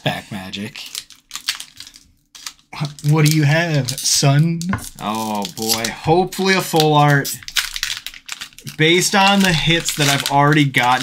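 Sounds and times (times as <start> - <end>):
foil wrapper crinkling and tearing: 0.4 - 11.0.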